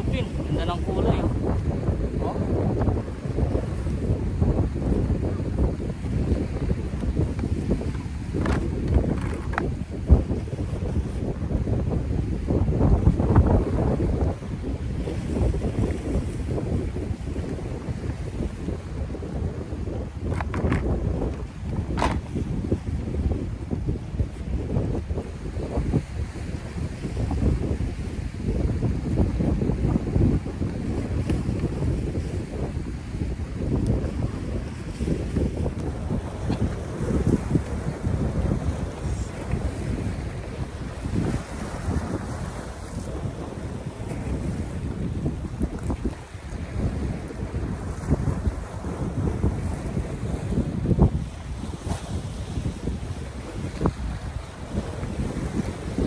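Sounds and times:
surf on rough sea: 0:00.0 - 0:56.0
wind buffeting microphone: 0:00.0 - 0:56.0.

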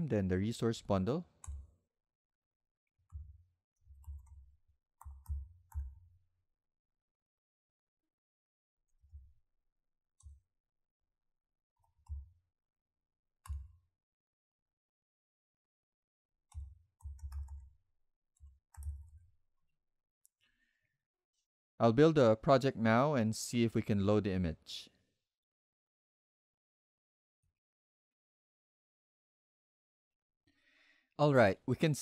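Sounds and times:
computer keyboard typing: 0:03.9 - 0:06.0, 0:16.5 - 0:17.7, 0:18.4 - 0:19.1
keyboard typing clicks: 0:16.5 - 0:17.7.

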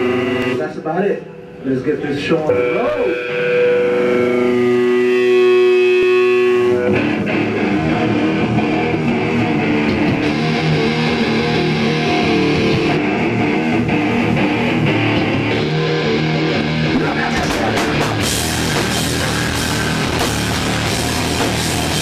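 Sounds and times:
drums: 0:00.0 - 0:01.6, 0:02.4 - 0:22.0
bass guitar: 0:00.0 - 0:22.0
electric guitar: 0:00.0 - 0:22.0.

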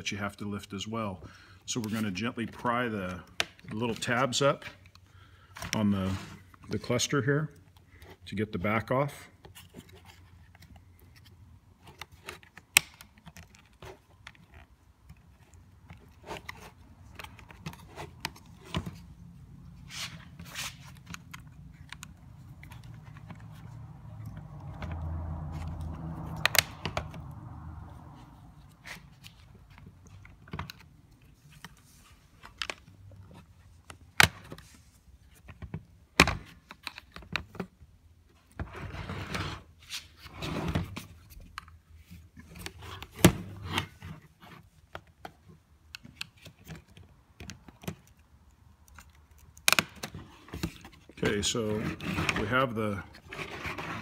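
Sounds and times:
plastic clicks and scrapes: 0:09.4 - 0:19.2, 0:20.1 - 0:27.3.

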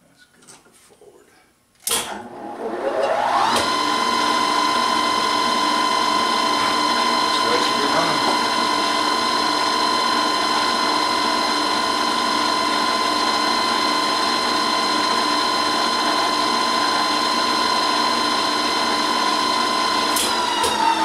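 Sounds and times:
milling machine whine: 0:02.0 - 0:21.0.

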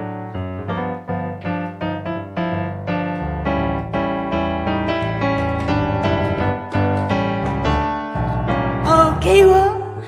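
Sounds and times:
piano playing sustained chords: 0:00.0 - 0:09.7.

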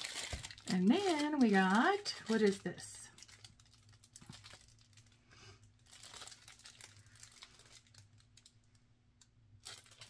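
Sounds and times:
cellophane crinkling: 0:00.0 - 0:10.0.

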